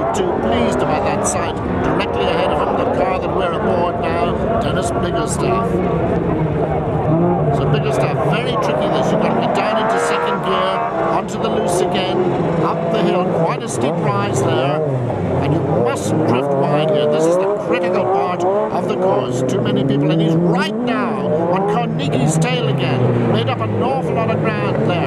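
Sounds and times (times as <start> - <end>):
race car engine revving: 0.0 - 25.0.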